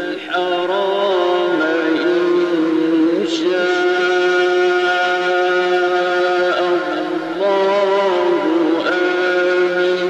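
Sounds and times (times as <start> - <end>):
man reciting melodically: 0.0 - 10.0.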